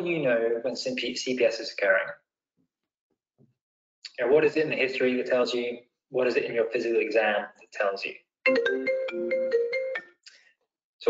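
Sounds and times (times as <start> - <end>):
ringtone of bright struck notes: 8.5 - 10.2.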